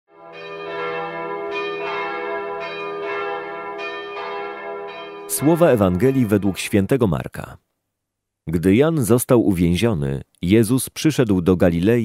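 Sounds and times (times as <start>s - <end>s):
bells ringing: 0.2s - 6.9s.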